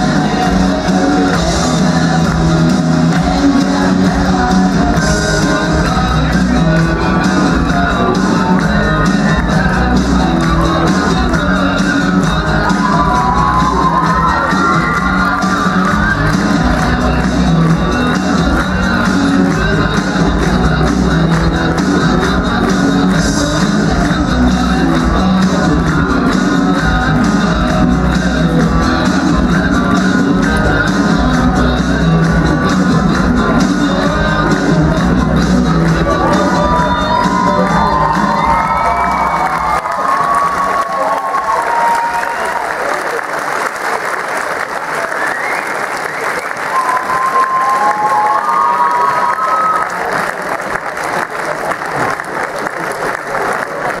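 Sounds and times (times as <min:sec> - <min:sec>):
loud music with heavy bass beat: 0:00.0 - 0:42.1
audience applauding and cheering: 0:00.0 - 0:54.0
people shouting: 0:36.2 - 0:42.6.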